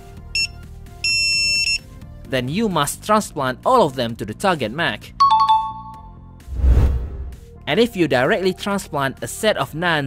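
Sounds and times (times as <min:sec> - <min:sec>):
soft background music: 0:00.0 - 0:10.0.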